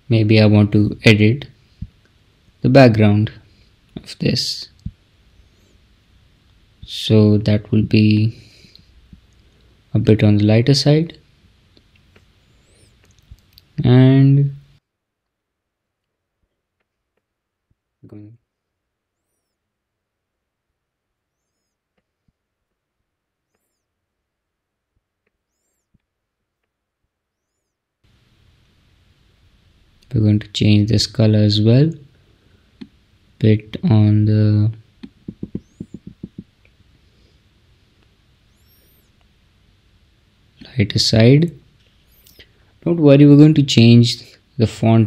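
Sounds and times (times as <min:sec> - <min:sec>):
faint high chirps: 0:18.0 - 0:19.7, 0:21.3 - 0:21.8, 0:23.4 - 0:24.0, 0:25.4 - 0:26.0, 0:35.3 - 0:36.4, 0:38.4 - 0:39.2, 0:42.0 - 0:42.6
computer mouse clicks: 0:35.0 - 0:36.5
high-pitched chirps: 0:35.3 - 0:36.4.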